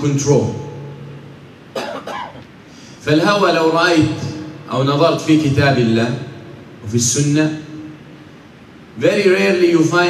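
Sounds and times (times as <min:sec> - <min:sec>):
person coughing: 0:01.7 - 0:02.4.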